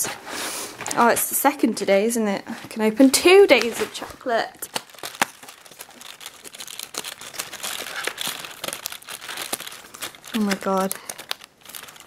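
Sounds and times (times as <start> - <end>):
foil crinkling: 2.9 - 12.0
cardboard tearing: 3.3 - 12.0.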